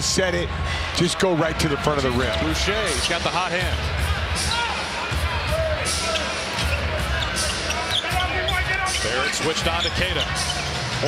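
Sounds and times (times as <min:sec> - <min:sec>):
arena crowd hubbub: 0:00.0 - 0:11.0.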